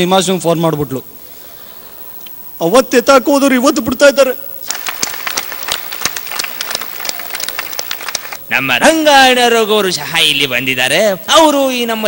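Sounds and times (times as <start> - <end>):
audience applauding: 4.6 - 8.4.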